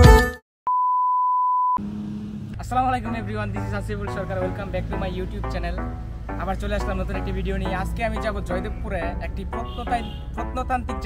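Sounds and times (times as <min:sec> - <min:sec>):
background music: 0:02.6 - 0:11.0.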